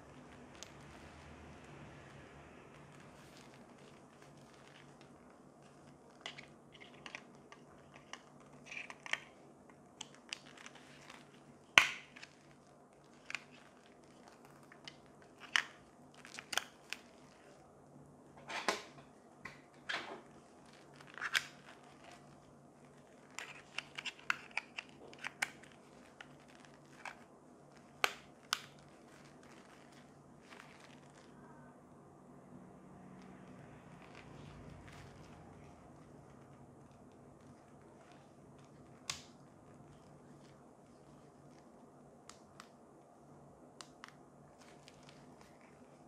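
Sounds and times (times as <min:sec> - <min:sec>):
rustling handling noise: 0:00.0 - 0:31.7, 0:32.8 - 0:46.0.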